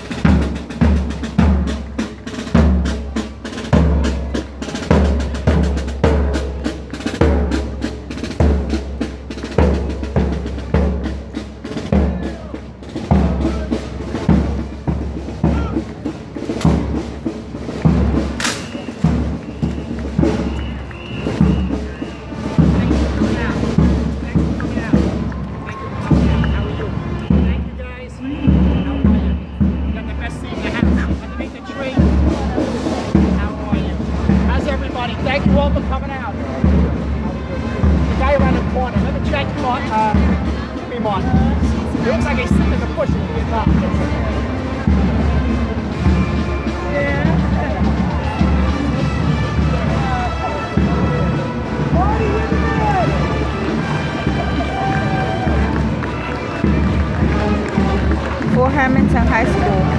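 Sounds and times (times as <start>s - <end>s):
snare drum strokes: 0.0s - 25.4s.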